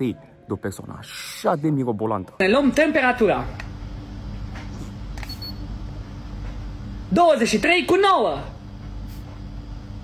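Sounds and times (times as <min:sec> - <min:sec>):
steady low hum: 0:02.4 - 0:10.0
thermometer beep: 0:05.2 - 0:05.6.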